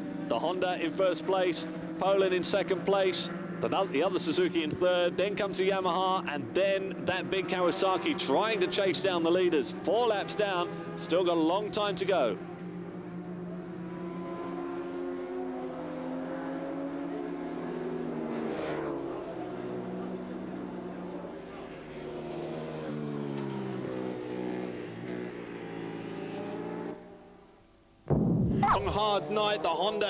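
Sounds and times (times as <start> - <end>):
racing motorcycle engines revving: 0.0 - 27.4, 28.7 - 30.0
motorcycle passing by: 12.4 - 27.4.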